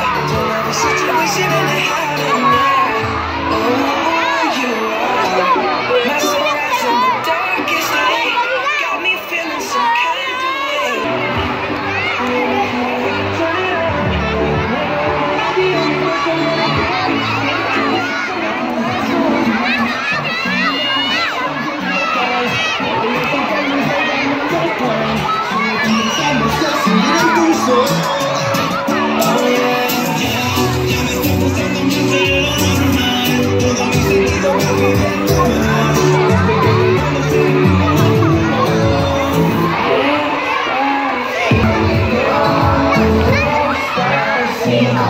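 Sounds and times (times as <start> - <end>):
loud background music: 0.0 - 8.5, 10.4 - 45.0
children shouting and chattering: 0.0 - 45.0.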